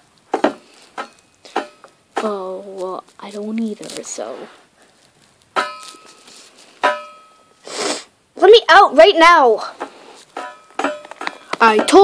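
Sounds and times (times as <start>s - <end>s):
breathy huff: 7.6s - 8.1s
metal cage bars ringing: 10.4s - 12.0s.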